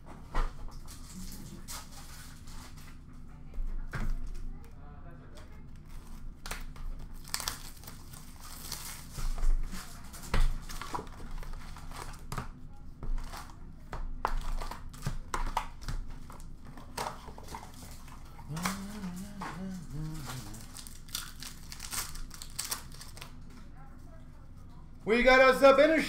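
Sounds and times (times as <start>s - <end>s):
foil wrappers crinkling: 5.6s - 12.4s, 14.3s - 23.6s
cards being shuffled by hand: 14.2s - 23.4s
person murmuring faintly: 18.2s - 20.8s.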